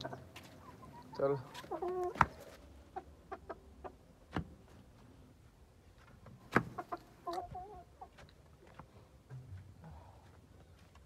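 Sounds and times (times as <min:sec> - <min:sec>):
chicken clucking: 0:00.0 - 0:04.1, 0:06.6 - 0:08.4.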